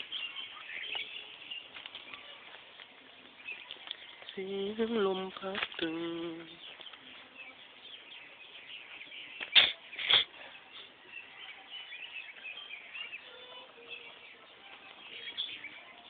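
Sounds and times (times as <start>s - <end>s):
small birds and insects chirping: 0.0s - 16.0s.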